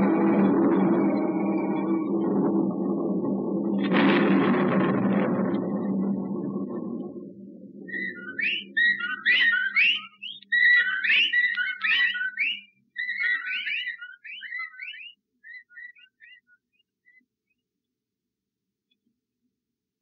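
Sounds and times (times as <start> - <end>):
low hum: 0.0 - 9.3
whistled bird calls: 7.8 - 17.6.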